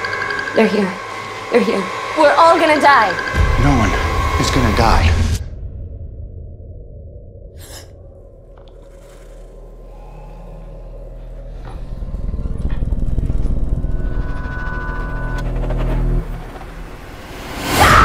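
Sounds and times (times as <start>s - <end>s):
low droning swell: 8.2s - 17.6s.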